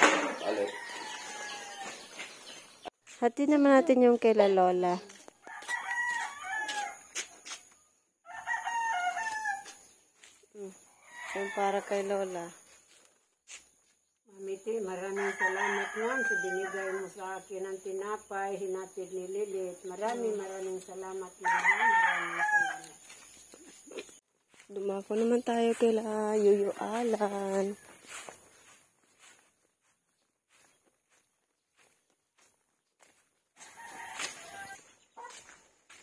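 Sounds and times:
rooster crowing: 0.1 - 2.1, 5.4 - 7.1, 8.2 - 9.8, 15.2 - 17.0, 21.4 - 23.0, 33.6 - 34.9.

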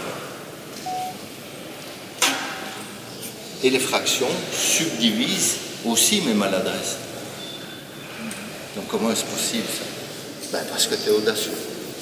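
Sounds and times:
short electronic beep: 0.8 - 1.2.

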